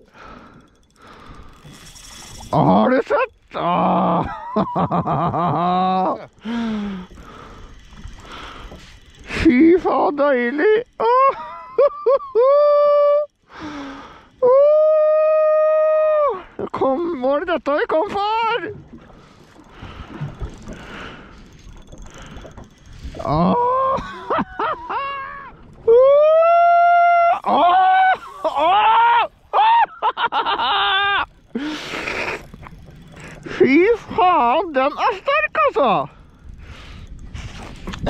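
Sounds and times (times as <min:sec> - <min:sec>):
man exclaiming and groaning: 0:02.6 - 0:04.4, 0:23.2 - 0:24.2, 0:25.9 - 0:29.8
breathy intake: 0:06.4 - 0:09.4, 0:31.6 - 0:33.6.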